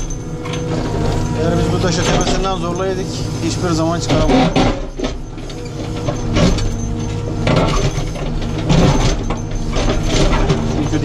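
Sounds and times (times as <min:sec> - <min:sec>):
diesel engine running: 0:00.0 - 0:11.0
backhoe bucket scraping soil: 0:00.3 - 0:11.0.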